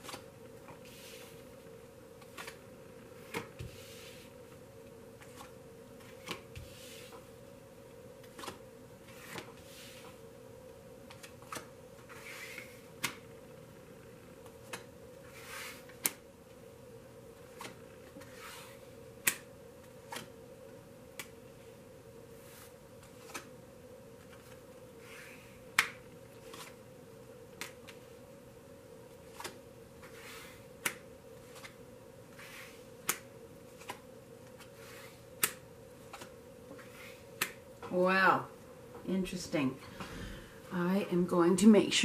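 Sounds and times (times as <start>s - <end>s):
faint steady hum: 0.0s - 42.0s
cards swishing: 8.2s - 10.2s, 11.1s - 13.2s, 14.6s - 16.2s, 17.5s - 19.4s, 24.2s - 26.8s, 29.3s - 37.6s
cards clicking on table: 11.1s - 13.2s, 29.3s - 31.8s, 32.4s - 37.6s.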